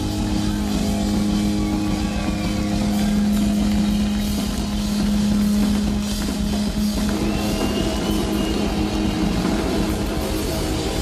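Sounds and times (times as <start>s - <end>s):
rock band droning distorted note: 0.0s - 11.0s.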